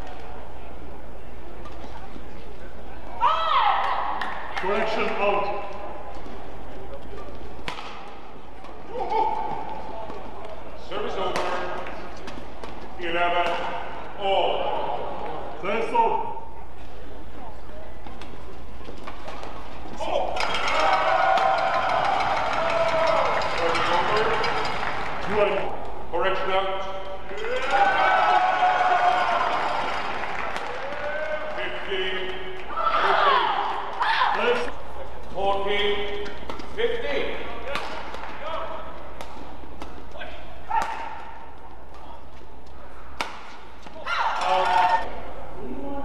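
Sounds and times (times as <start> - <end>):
low arena hum: 0.0 - 46.0
sports hall ambience: 0.0 - 46.0
racket hitting shuttlecock: 7.2 - 8.2, 37.7 - 42.1, 43.1 - 44.4
shuttlecock hit by rackets: 7.6 - 8.2, 37.7 - 38.4, 43.2 - 44.0.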